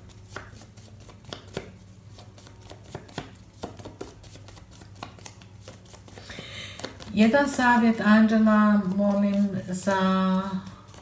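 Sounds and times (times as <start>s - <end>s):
cards shuffled by hand: 0.0s - 8.0s, 8.8s - 11.0s
low steady hum: 0.0s - 11.0s.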